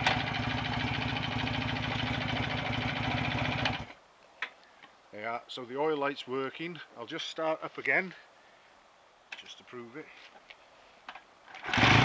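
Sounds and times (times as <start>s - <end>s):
motorcycle engine idling: 0.0s - 3.9s.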